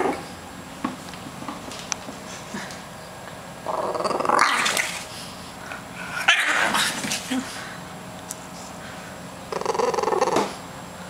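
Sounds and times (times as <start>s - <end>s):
dog growling: 3.6s - 5.0s, 9.5s - 10.6s.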